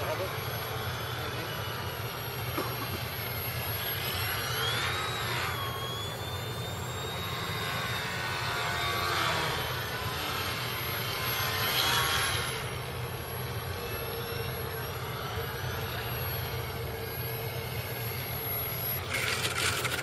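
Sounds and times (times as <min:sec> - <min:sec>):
model airplane motor whining: 0:00.0 - 0:20.0
steady low hum: 0:00.0 - 0:20.0.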